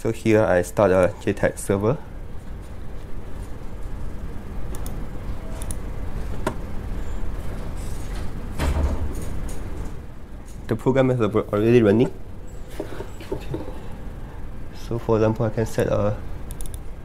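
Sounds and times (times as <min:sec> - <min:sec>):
room background rumble: 0:00.0 - 0:17.0.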